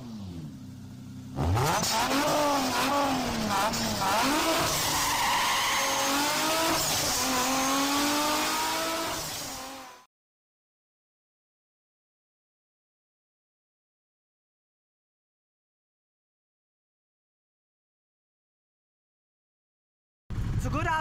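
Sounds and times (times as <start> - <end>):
race car engine revving: 1.2 - 10.0.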